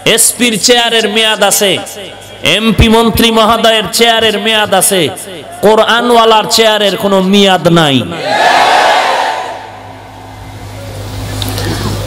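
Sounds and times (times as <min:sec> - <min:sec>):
amplified preacher's voice echoing: 0:00.0 - 0:08.2
low sound system hum: 0:09.3 - 0:12.0.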